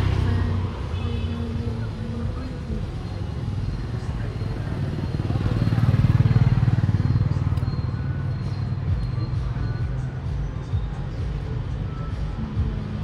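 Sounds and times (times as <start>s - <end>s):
motorbike engine passing: 0.0s - 0.9s, 3.9s - 9.6s
street traffic: 0.0s - 13.0s.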